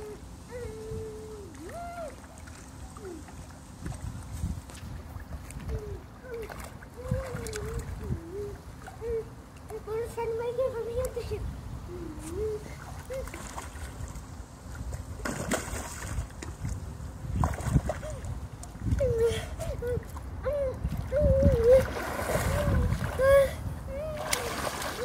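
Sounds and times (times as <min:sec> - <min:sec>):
swimming pool water splashes: 0:00.0 - 0:11.2, 0:12.3 - 0:25.0.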